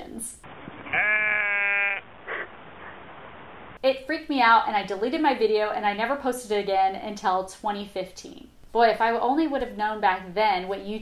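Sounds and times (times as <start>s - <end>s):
sheep bleating: 0.8s - 2.1s.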